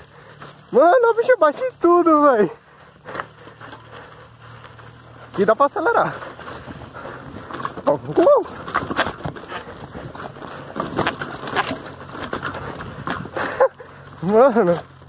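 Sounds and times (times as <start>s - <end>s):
bicycle rattling and knocking: 0.0s - 15.0s
bike striking the ground: 0.0s - 15.0s
tyre noise on dirt: 0.0s - 15.0s
person exclaiming: 8.0s - 8.6s.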